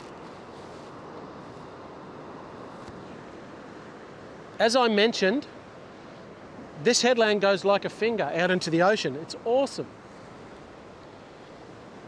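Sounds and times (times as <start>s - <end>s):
ocean surf breaking on rocks: 0.0s - 12.0s
wind: 0.0s - 12.0s.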